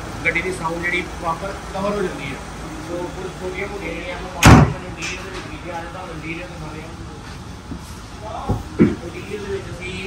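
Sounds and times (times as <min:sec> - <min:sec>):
car bonnet slamming shut: 0:04.4 - 0:04.8.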